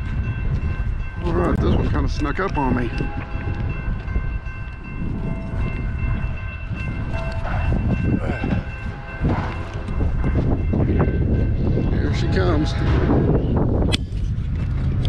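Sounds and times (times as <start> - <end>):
low train rumble: 0.0 - 15.0
locomotive horn chord: 12.1 - 13.3.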